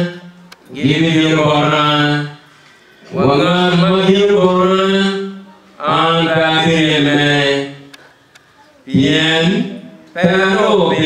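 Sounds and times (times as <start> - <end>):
man chanting: 0.0 - 2.5, 3.1 - 8.0, 8.9 - 11.0.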